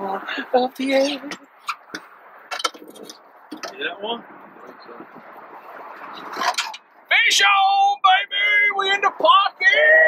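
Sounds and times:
open-air background noise: 0.0 - 10.0
fishing rod scraping and rattling: 1.0 - 3.8, 5.9 - 6.9.

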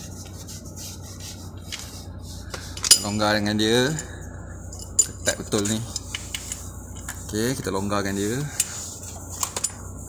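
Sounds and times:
small metal clinks: 4.7 - 7.2.

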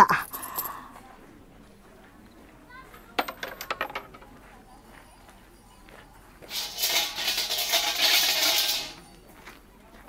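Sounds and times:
coins clinking into box: 3.2 - 4.3, 6.5 - 9.0.

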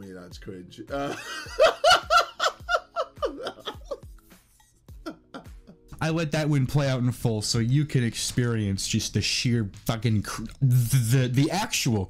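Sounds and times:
man laughing hard: 1.0 - 4.1, 5.0 - 5.8.

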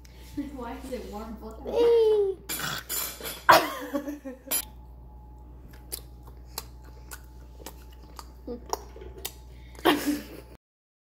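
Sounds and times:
faint steady hum: 0.0 - 10.6
person laughing: 9.8 - 10.6.

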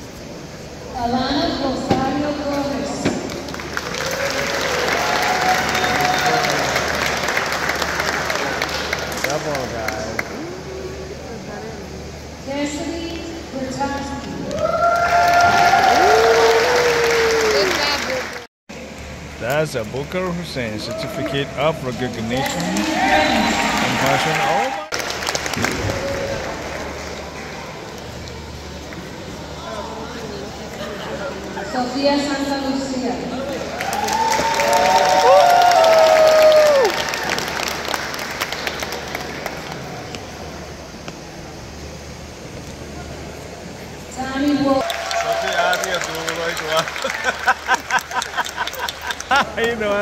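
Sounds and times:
audience applauding: 3.3 - 10.5, 14.5 - 18.5, 20.8 - 28.1, 33.7 - 40.1, 44.8 - 50.0
long held cheers: 3.9 - 8.4, 14.5 - 18.4, 20.8 - 21.7, 22.6 - 25.0, 33.7 - 37.6, 44.8 - 47.2.

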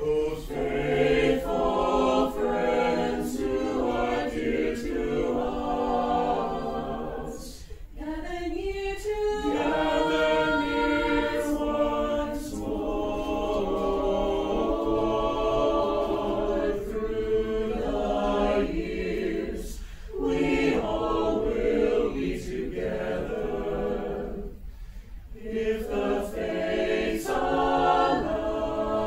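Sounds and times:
choir singing a cappella: 0.0 - 29.0.

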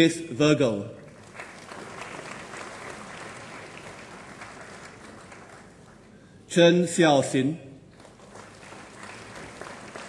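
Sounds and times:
audience applauding: 1.1 - 6.1, 7.9 - 10.0.

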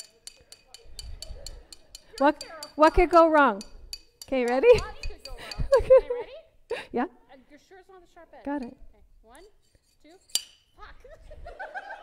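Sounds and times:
metal blade clinking glass bottle: 0.0 - 5.8, 9.4 - 10.8.

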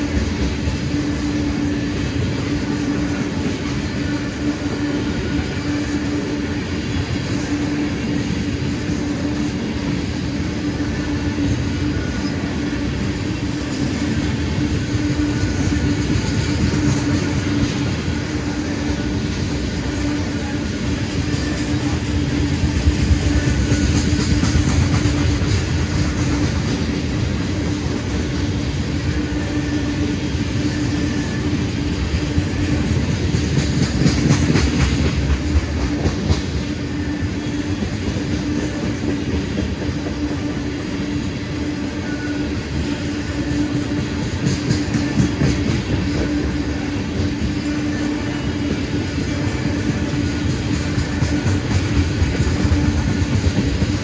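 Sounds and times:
freight train rolling past: 0.0 - 54.0.

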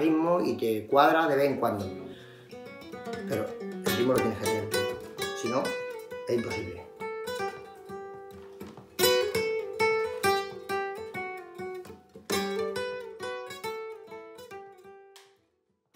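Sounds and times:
flamenco guitar playing: 0.0 - 15.4.

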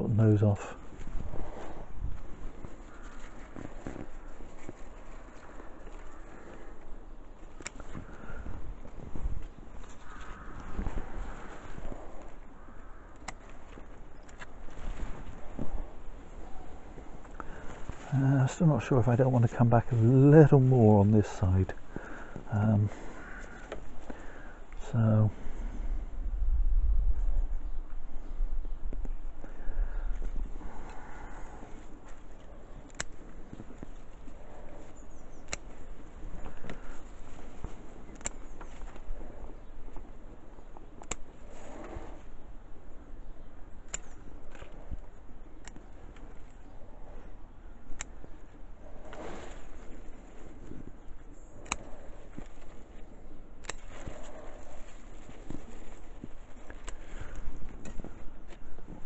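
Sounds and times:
leaves rustling and clicking: 0.0 - 25.7, 28.8 - 59.0
wind buffeting microphone: 0.8 - 19.9, 20.8 - 43.2
scissors snipping: 13.1 - 13.6, 32.8 - 33.2, 41.0 - 41.3, 51.6 - 52.8, 53.6 - 56.0.

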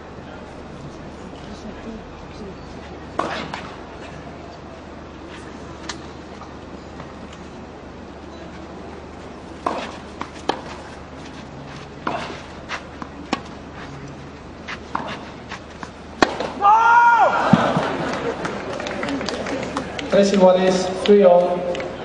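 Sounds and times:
tennis ball bounces: 3.1 - 3.8, 9.6 - 11.4, 14.7 - 16.6
tennis racket strikes: 9.6 - 10.8, 14.7 - 16.6
player crying out: 16.6 - 17.4
crowd reacting: 16.6 - 20.4.

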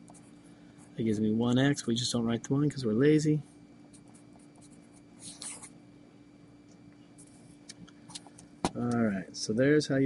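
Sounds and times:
pen scratching on paper: 4.0 - 5.8.

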